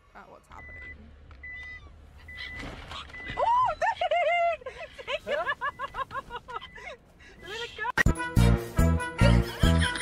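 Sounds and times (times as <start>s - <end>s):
car warning chime beeping: 0.4s - 4.0s, 5.4s - 7.0s.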